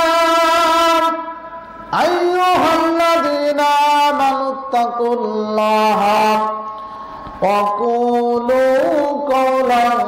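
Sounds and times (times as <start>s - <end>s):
man chanting through microphone: 0.0s - 10.0s.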